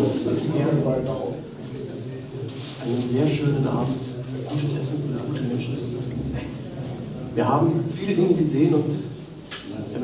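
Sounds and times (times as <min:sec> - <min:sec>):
man speaking: 0:00.0 - 0:02.2, 0:07.3 - 0:10.0.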